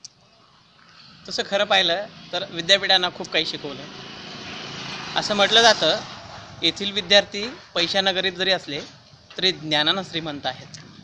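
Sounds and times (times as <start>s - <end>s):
steady rushing noise: 1.0s - 8.5s.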